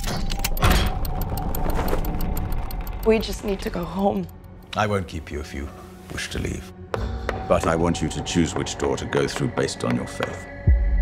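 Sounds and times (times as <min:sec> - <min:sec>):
chain mechanism ticking: 0:00.0 - 0:04.7.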